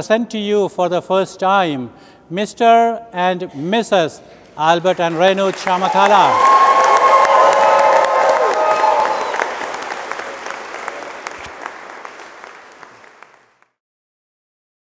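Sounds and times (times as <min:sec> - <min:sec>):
congregation applauding: 0:04.8 - 0:13.7
whoops and cheers: 0:05.8 - 0:09.8.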